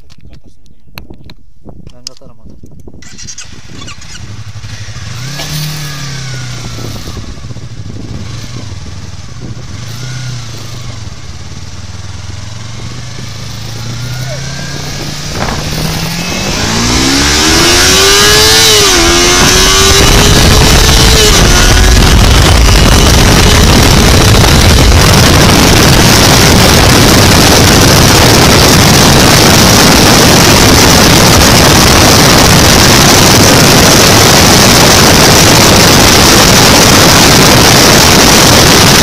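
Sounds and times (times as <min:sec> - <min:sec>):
wind noise: 0:00.0 - 0:39.0
motorcycle engine accelerating: 0:02.9 - 0:39.0.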